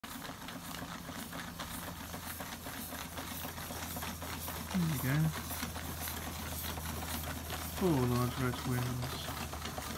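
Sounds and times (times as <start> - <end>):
steam engines ticking and clattering: 0.0 - 9.9.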